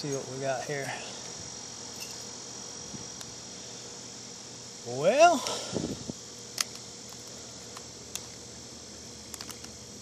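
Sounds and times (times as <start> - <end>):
high-pitched insect drone: 0.0 - 10.0.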